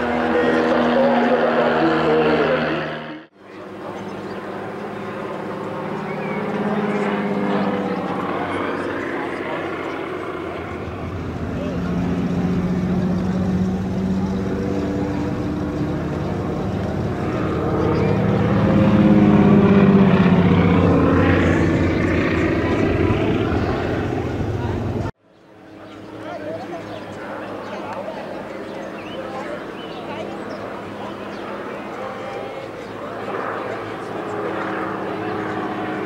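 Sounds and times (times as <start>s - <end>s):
propeller plane engine droning: 0.0s - 36.0s.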